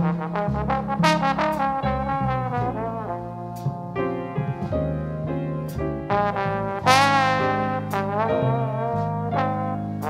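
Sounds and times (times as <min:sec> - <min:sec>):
trumpet: 0:00.0 - 0:04.7, 0:06.1 - 0:10.0
bass line: 0:00.0 - 0:10.0
slow jazz ballad: 0:00.0 - 0:10.0
trombone: 0:00.0 - 0:10.0.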